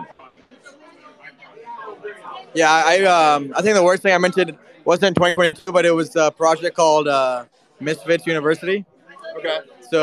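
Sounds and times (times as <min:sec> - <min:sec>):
faint background chatter: 0:00.0 - 0:10.0.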